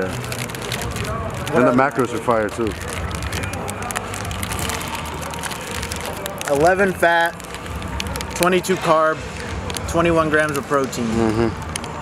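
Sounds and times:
wrapper crinkling: 0.0s - 12.0s.

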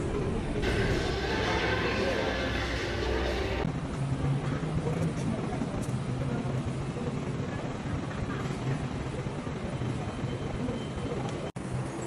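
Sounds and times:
indistinct voices: 0.0s - 3.7s
vehicles: 0.0s - 12.0s.

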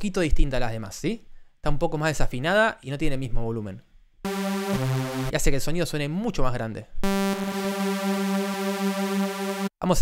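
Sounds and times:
synthesizer sawtooth note: 4.3s - 5.3s, 7.0s - 9.8s.

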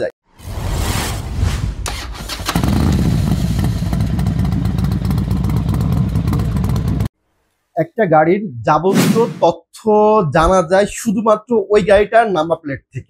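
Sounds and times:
whoosh: 0.2s - 3.7s, 8.9s - 9.4s
motorcycle engine rumbling: 2.2s - 7.1s.

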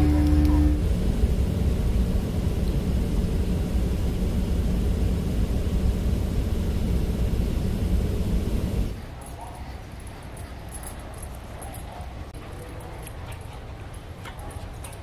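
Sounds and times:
jet cabin rumble: 0.0s - 9.0s.

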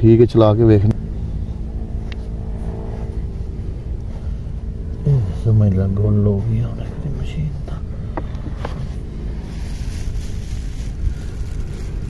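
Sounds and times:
small two-stroke engine running: 0.4s - 12.0s.

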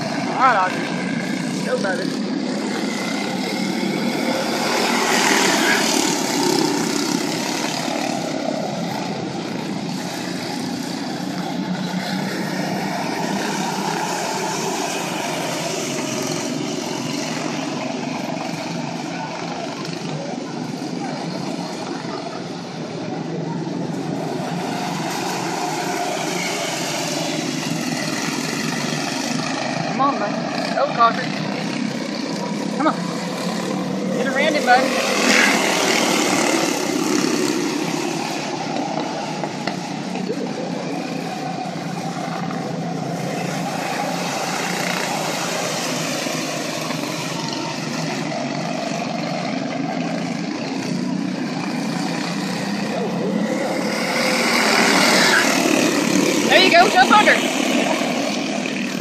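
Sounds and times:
small race car engines droning: 0.0s - 59.0s.

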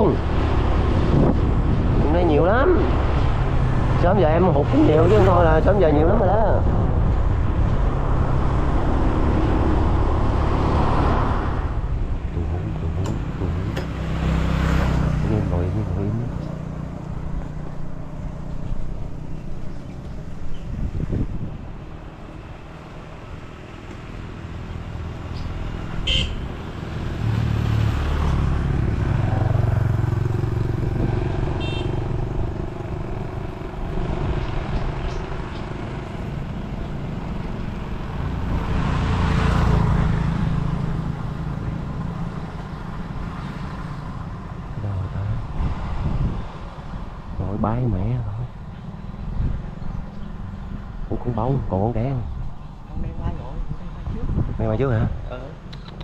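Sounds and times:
road and wind noise: 0.0s - 56.0s.

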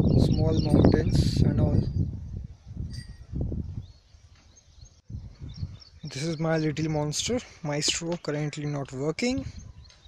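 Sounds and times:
wind rumble on microphone: 0.0s - 8.0s, 9.2s - 10.0s
faint distant bird chirps: 0.0s - 10.0s.

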